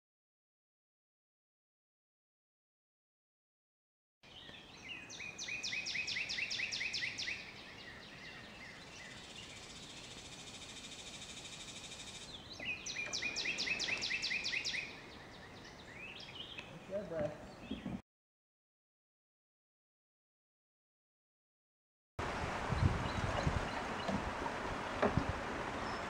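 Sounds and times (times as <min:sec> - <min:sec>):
songbird singing slurred notes: 0:04.2 - 0:18.0, 0:22.7 - 0:24.2.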